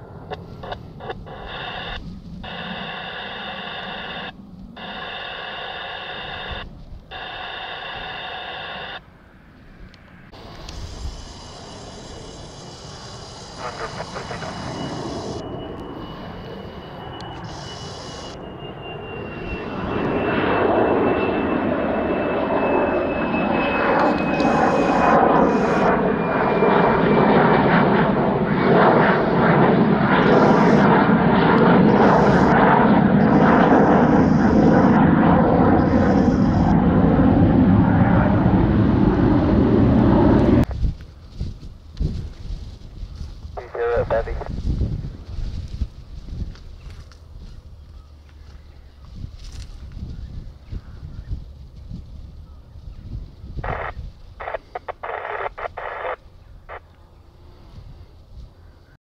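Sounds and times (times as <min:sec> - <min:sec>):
high turbine whine: 0:00.0 - 0:59.0
jet engine passing overhead: 0:00.0 - 0:59.0.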